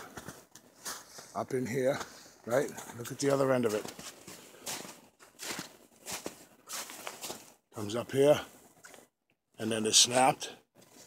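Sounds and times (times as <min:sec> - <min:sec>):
footsteps crunching in snow: 0:03.2 - 0:07.6.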